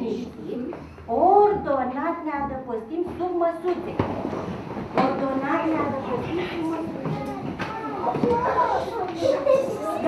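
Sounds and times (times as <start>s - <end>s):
woman speaking: 0.0s - 4.1s, 5.0s - 6.9s
chairs and tables shifting: 3.1s - 10.0s.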